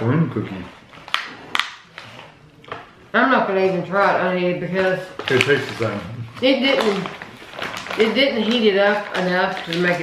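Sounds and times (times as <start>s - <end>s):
plastic packaging crackling: 4.6s - 10.0s.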